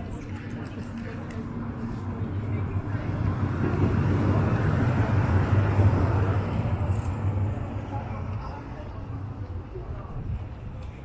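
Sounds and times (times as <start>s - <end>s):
tram passing with low rumble: 0.0s - 11.0s.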